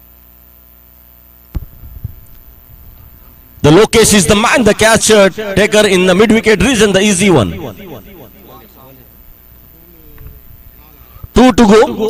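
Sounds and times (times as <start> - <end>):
electrical mains hum: 0.0 - 12.0
sharp knock: 1.5 - 3.4.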